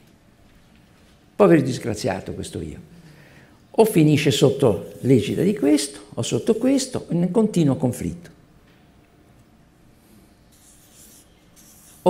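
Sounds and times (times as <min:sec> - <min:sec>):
felt-tip marker scratching on paper: 0:10.5 - 0:12.0.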